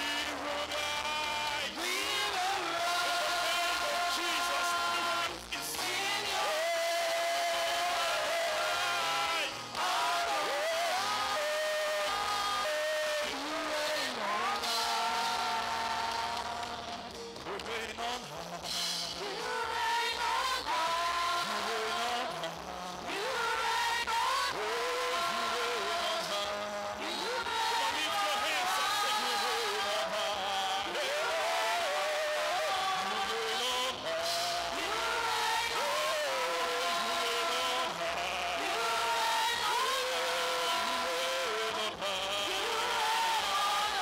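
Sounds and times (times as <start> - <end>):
voices singing over sound system: 0.0 - 44.0.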